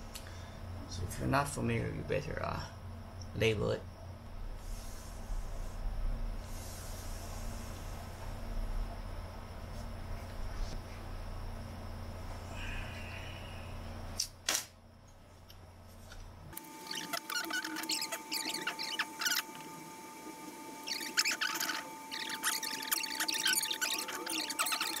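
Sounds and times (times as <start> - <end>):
low steady hum: 0.0 - 25.0.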